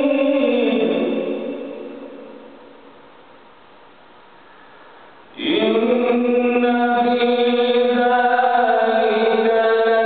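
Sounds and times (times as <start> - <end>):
man chanting melodically: 0.0 - 2.4, 5.3 - 10.0.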